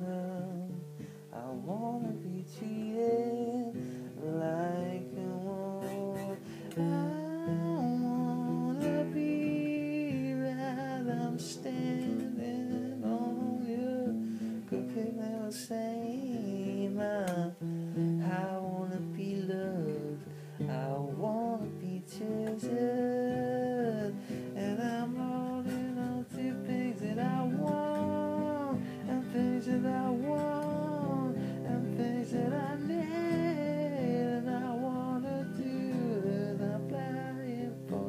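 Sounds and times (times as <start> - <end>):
acoustic guitar strumming: 0.0 - 38.0
person humming wordlessly: 1.4 - 14.1.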